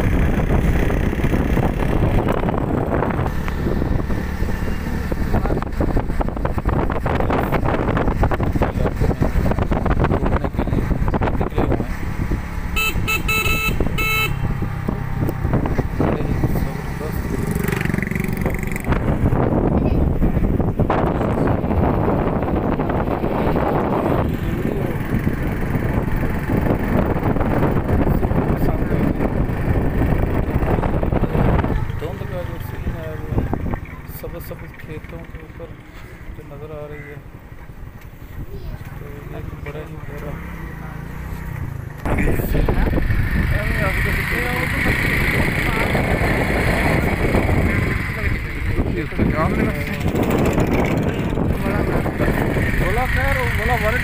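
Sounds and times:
road vehicle running loudly: 0.0 - 54.0
horn short toots: 12.8 - 14.5.

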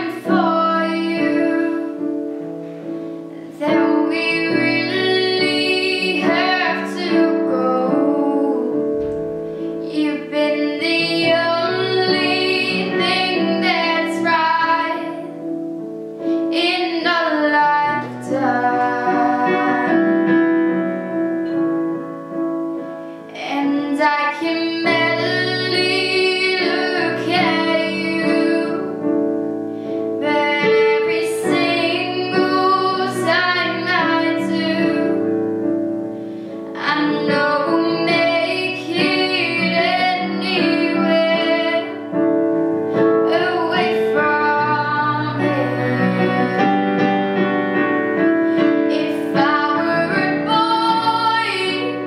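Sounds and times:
girl singing: 0.0 - 2.3, 3.3 - 9.0, 9.7 - 15.6, 16.3 - 21.2, 23.3 - 29.4, 30.1 - 35.8, 36.6 - 47.8, 48.4 - 52.0
guitar accompaniment: 0.0 - 52.0.

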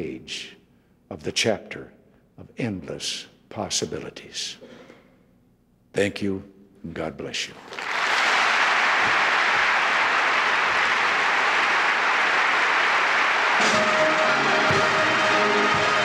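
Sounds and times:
audience applauding: 7.6 - 16.0
military band playing: 12.5 - 16.0.

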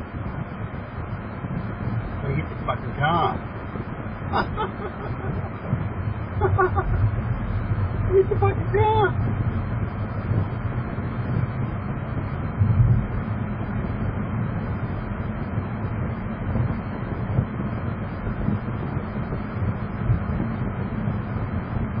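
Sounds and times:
car road and engine noise: 0.0 - 22.0
louder rumble: 0.0 - 22.0.

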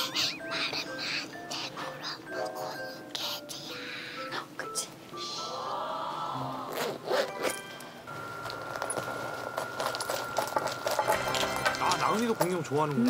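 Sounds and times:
light background music: 0.0 - 13.0
zipper rasping: 6.7 - 7.6.

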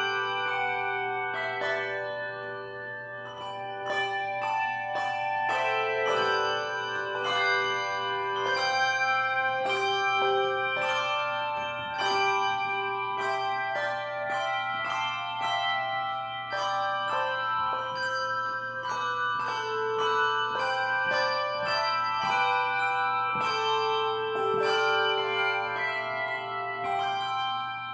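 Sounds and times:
handbell choir playing: 0.0 - 27.9.

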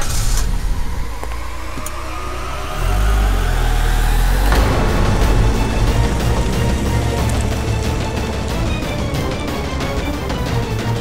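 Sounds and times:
car engine revving: 0.0 - 11.0.

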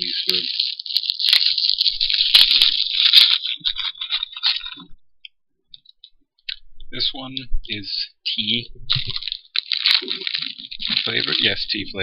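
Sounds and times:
plastic packaging crinkling: 0.0 - 4.8, 8.9 - 12.0.

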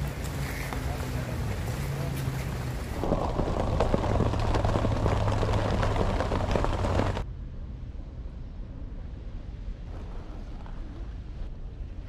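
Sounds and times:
heavy rain pouring: 2.3 - 7.2.

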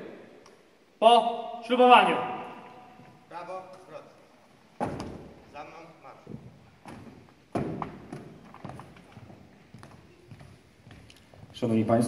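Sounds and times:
footsteps on hall floor: 2.8 - 3.6, 4.8 - 12.0.

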